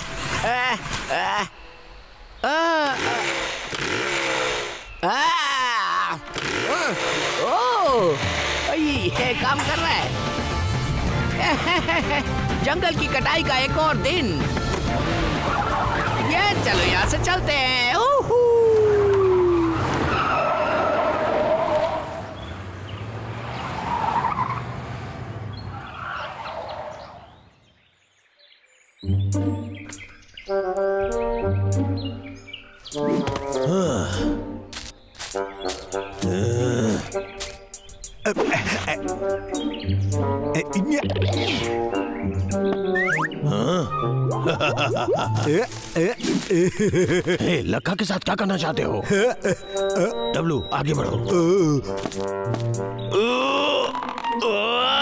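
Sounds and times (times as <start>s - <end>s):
chainsaw engine: 2.8s - 4.9s, 6.2s - 10.4s
man crying out with strain: 5.0s - 8.2s, 33.6s - 34.3s, 43.4s - 44.1s, 53.1s - 55.0s
background music: 5.0s - 18.2s, 29.0s - 55.0s
tyres skidding on dirt: 6.3s - 18.0s, 18.7s - 27.5s.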